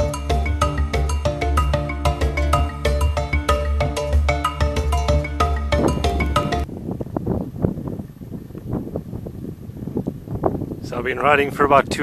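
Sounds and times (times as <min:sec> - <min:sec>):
wind buffeting microphone: 0:02.2 - 0:12.0.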